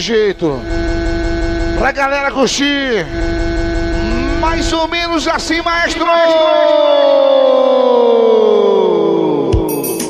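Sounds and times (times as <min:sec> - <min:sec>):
electronic siren tone gliding down: 0:00.4 - 0:09.9.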